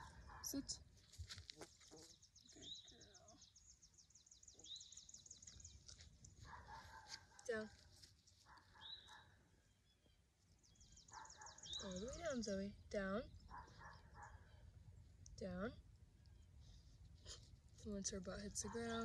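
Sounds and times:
bird chirps: 0:01.8 - 0:07.1, 0:08.6 - 0:12.6.

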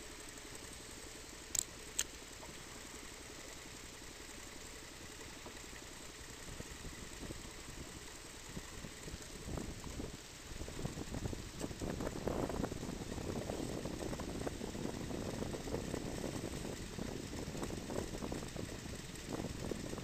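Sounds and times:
outboard motor idling: 0:00.0 - 0:20.0
sharp clicks: 0:01.5 - 0:02.2.

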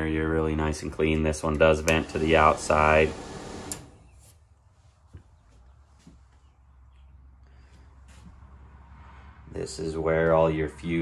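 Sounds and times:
exhaust fan blowing: 0:00.2 - 0:04.1.

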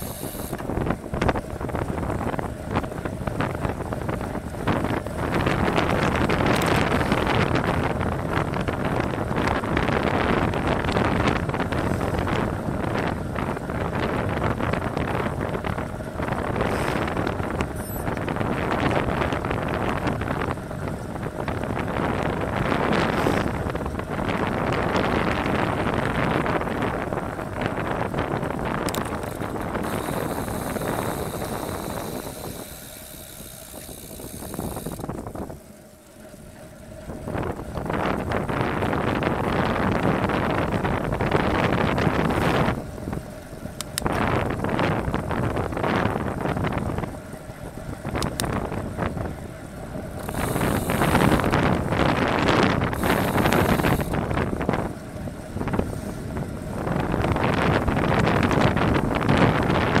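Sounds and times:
wind noise on microphone: 0:00.0 - 1:00.0.

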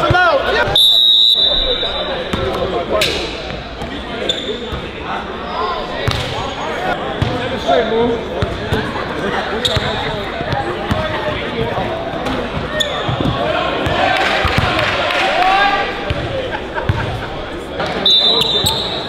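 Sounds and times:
crowd chatter and shouts: 0:00.0 - 0:19.0.

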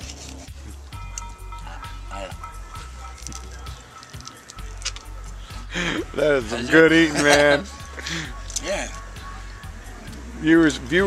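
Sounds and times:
background music: 0:00.0 - 0:11.0
faint voices: 0:00.0 - 0:11.0.

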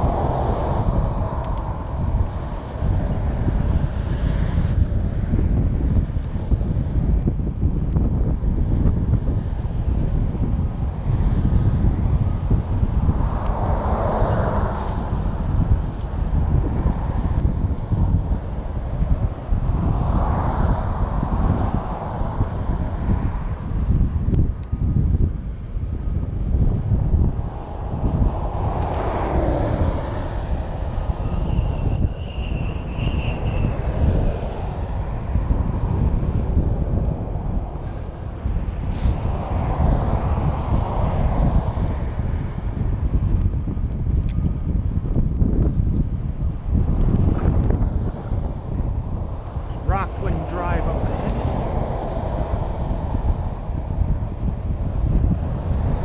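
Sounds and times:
cars passing: 0:00.0 - 0:56.0
wind buffeting microphone: 0:00.0 - 0:56.0.

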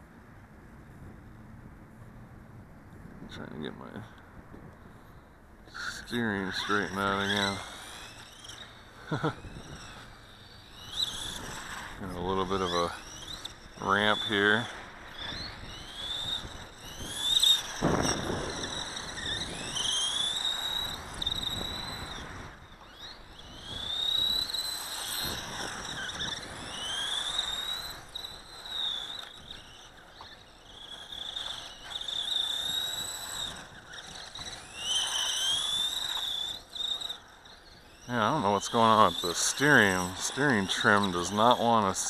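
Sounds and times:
electric motor whine: 0:04.5 - 0:42.0
tyres rasping on concrete: 0:24.5 - 0:42.0.

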